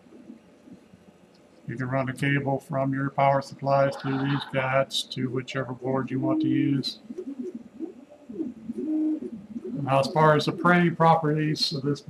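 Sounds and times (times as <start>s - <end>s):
dove cooing: 3.8s - 4.7s, 5.9s - 12.0s.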